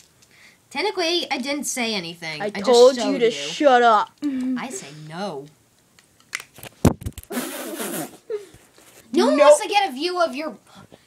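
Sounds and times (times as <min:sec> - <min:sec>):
person laughing breathily: 0:07.7 - 0:08.6.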